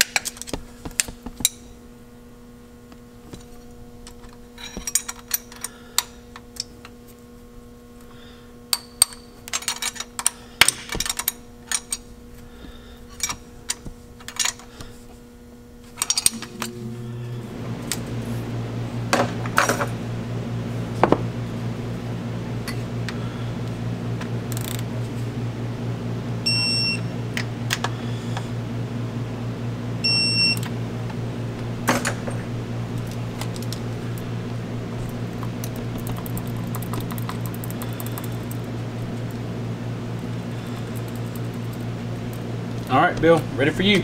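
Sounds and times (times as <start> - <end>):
low machine hum: 0.0 - 44.0.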